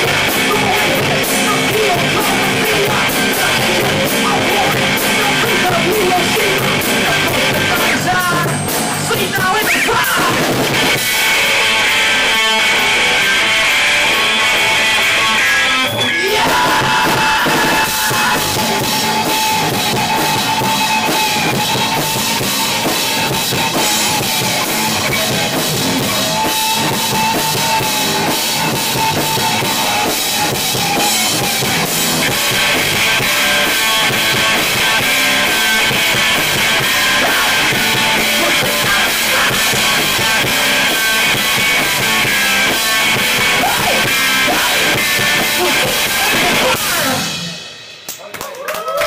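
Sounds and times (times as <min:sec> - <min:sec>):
distorted electric guitar: 0:00.0 - 0:48.2
bass: 0:00.0 - 0:49.0
drum kit: 0:00.0 - 0:49.0.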